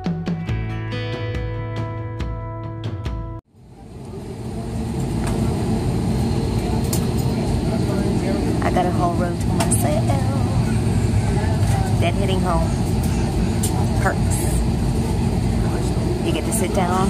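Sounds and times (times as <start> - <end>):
faint voices: 3.6 - 17.0
jet airliner cabin noise: 3.6 - 17.0.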